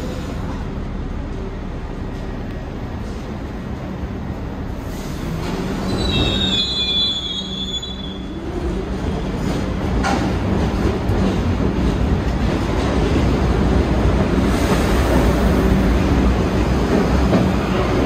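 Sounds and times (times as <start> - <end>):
train wheels rumbling and rattling: 0.0 - 18.0
train wheels squealing on rail: 4.9 - 8.6.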